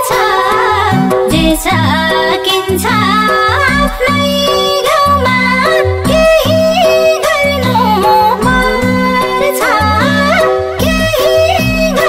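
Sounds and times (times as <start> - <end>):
folk song vocal: 6.1 - 12.0
folk instruments with steady beat: 7.6 - 10.2.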